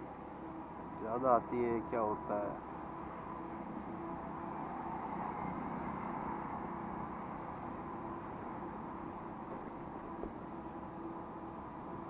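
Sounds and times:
motorcycle engine hum: 7.5s - 11.4s.

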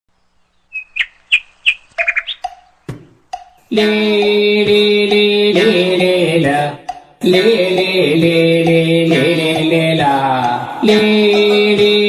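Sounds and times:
high bird-like chirps: 0.1s - 3.7s.

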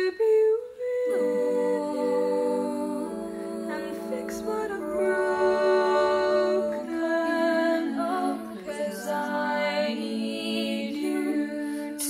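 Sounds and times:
girls humming in close harmony: 0.8s - 12.0s.

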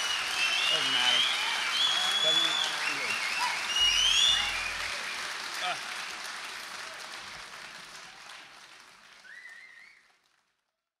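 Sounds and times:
crowd whistle: 0.0s - 5.4s, 9.2s - 10.1s
audience applause: 0.0s - 10.6s.

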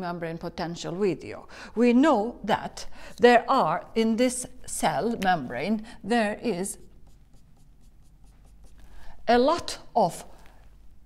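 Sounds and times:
whiteboard marker scratching: 6.1s - 9.9s.

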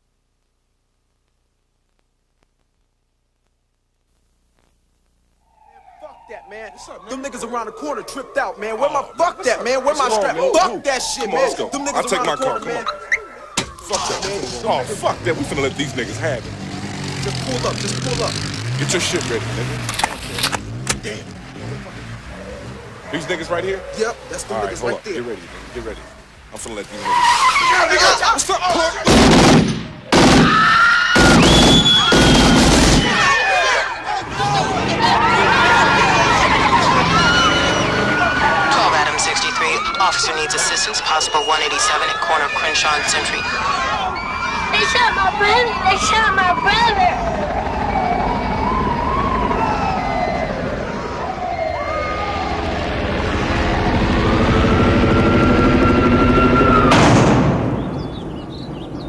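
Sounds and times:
rapid gunfire bursts: 29.1s - 30.5s, 31.6s - 33.1s
birds chirping: 57.6s - 59.0s.

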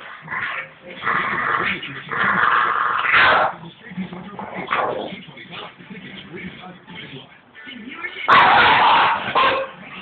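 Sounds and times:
dogs play-wrestling and vocalising: 0.0s - 5.9s.

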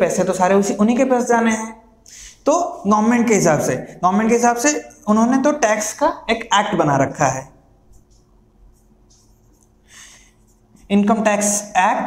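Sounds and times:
low steady hum: 0.0s - 12.0s
marker writing on whiteboard: 7.9s - 11.6s.

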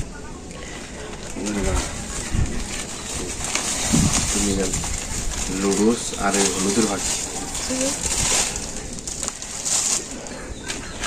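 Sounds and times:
plastic bag crinkling: 0.6s - 10.8s.

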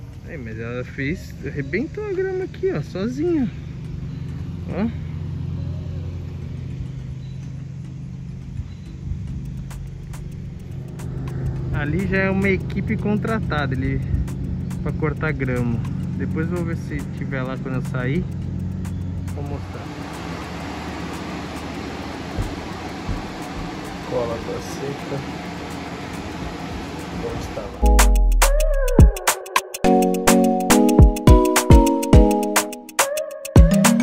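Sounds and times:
faint ticks: 6.6s - 11.8s
vehicle engine rumble inside cabin: 16.9s - 27.9s
low thump: 22.3s - 24.0s.

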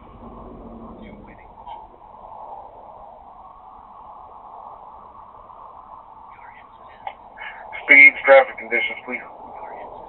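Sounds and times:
road and engine noise in cabin: 0.0s - 2.1s
faint radio voice: 6.3s - 10.0s.

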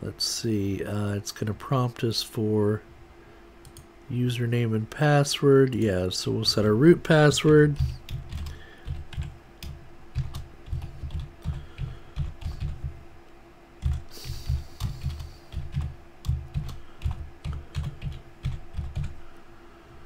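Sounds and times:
faint steady hum: 0.0s - 20.0s
computer keyboard typing: 7.3s - 12.9s, 13.8s - 19.2s.

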